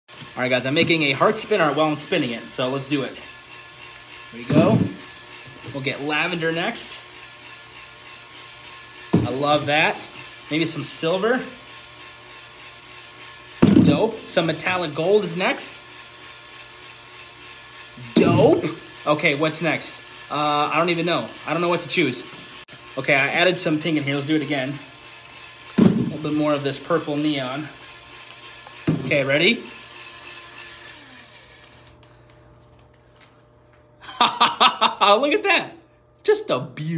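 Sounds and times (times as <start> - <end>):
hand-held drill humming: 0.1 - 35.0
spinner whirring with falling pitch: 0.2 - 32.2
person speaking: 4.3 - 5.0, 5.6 - 7.1, 18.0 - 22.3.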